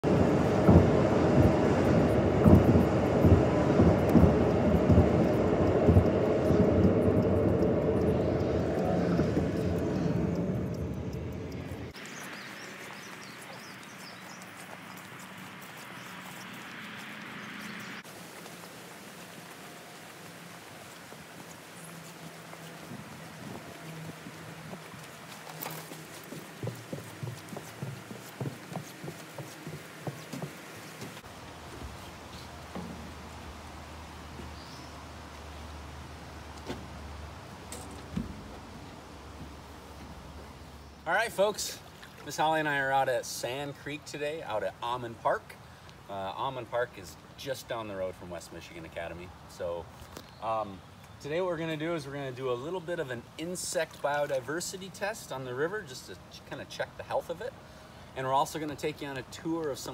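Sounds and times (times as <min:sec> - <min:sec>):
car cabin road noise: 0:00.0 - 0:42.6
outdoor background noise: 0:00.0 - 0:59.9
footsteps on wooden footbridge: 0:00.1 - 0:33.5, 0:34.2 - 0:34.9, 0:36.5 - 0:40.8.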